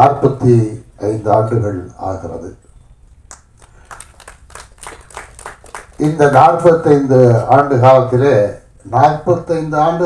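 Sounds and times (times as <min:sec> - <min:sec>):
audience applause: 0:03.6 - 0:06.4.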